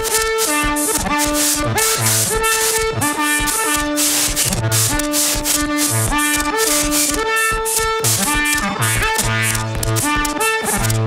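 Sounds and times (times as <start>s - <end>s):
synthesizer notes: 0.0s - 11.0s
bursts of hissing noise: 3.5s - 8.6s.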